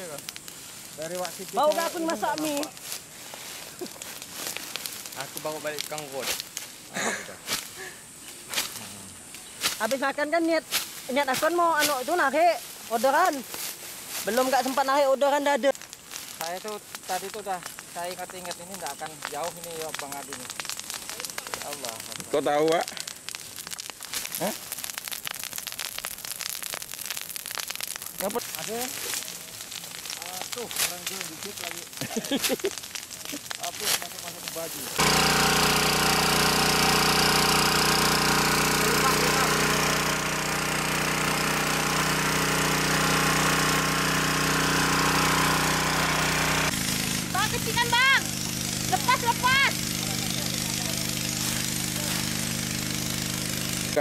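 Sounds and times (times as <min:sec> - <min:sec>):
brush fire crackling and popping: 0:00.0 - 0:54.0
constant hiss: 0:00.0 - 0:54.0
small pump engine running: 0:35.0 - 0:54.0.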